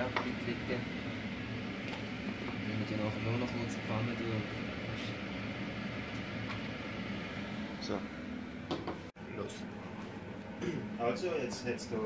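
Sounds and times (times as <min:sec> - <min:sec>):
kitchen background hum: 0:00.0 - 0:12.0.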